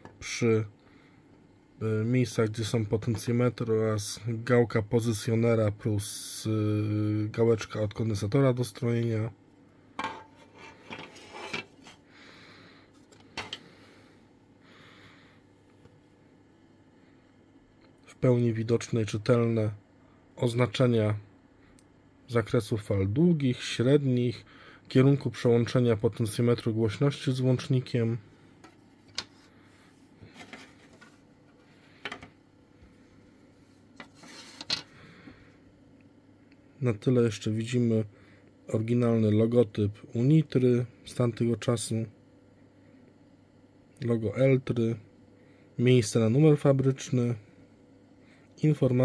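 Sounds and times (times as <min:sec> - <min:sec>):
soft rubbing: 0:10.3 - 0:12.0, 0:33.0 - 0:34.7
plastic case clicks and knocks: 0:32.0 - 0:32.3
short rubbing sound: 0:34.1 - 0:34.7.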